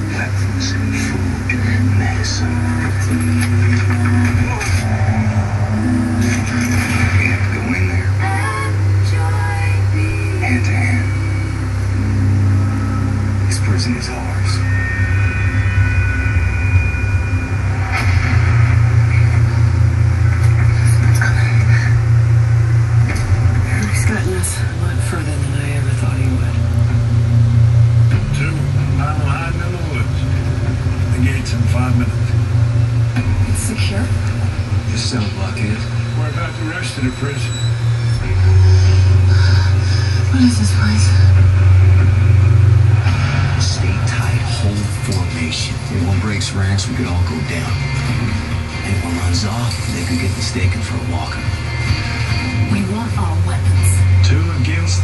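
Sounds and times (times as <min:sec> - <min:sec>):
dialogue: 0:00.0 - 0:55.0
low rumbling drone: 0:00.0 - 0:55.0.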